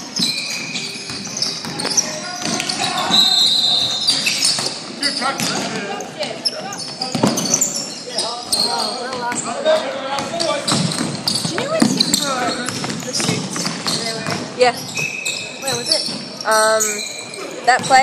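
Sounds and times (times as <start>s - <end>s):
sneakers squeaking: 0.0s - 18.0s
basketball dribbling on wooden court: 10.4s - 14.6s.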